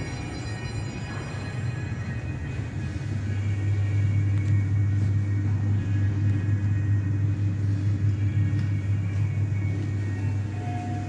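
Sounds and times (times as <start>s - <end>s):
lift low hum: 0.0s - 11.0s.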